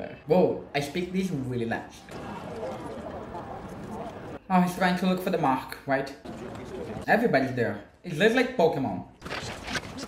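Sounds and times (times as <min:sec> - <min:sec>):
murmur of voices: 0:00.0 - 0:04.4, 0:06.2 - 0:07.1
footsteps on cobblestones: 0:06.2 - 0:07.1.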